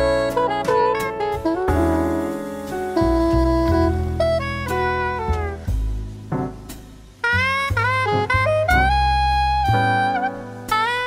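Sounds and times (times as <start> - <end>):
saxophone sliding down: 0.0 - 6.0, 6.7 - 11.0
bass notes: 0.0 - 11.0
piano notes: 0.0 - 11.0.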